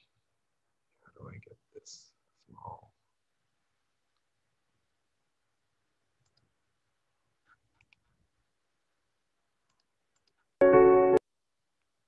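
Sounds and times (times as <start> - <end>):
faint computer mouse clicks: 6.2 - 6.5, 7.8 - 8.1, 9.6 - 10.5.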